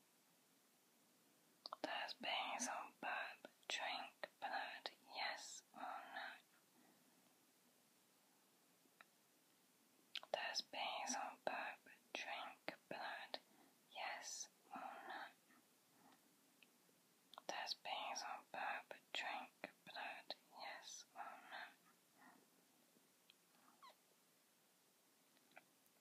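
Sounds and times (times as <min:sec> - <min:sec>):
person whispering: 0:01.7 - 0:06.5, 0:10.2 - 0:15.4, 0:17.4 - 0:22.4.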